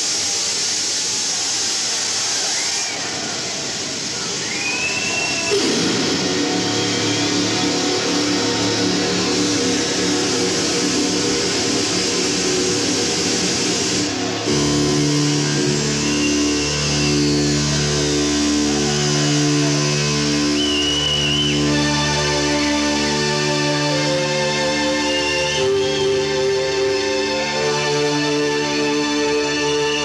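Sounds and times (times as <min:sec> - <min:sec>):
high held guitar tone: 0:05.0 - 0:30.0
distorted electric guitar: 0:05.4 - 0:30.0
bass guitar: 0:05.6 - 0:30.0.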